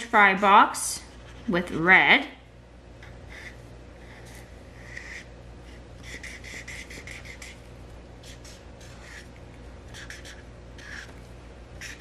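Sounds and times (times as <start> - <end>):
faint low hum: 0.0 - 12.0
marker scribbling on paper: 3.3 - 7.6, 8.2 - 9.3, 9.9 - 11.2, 11.8 - 12.0.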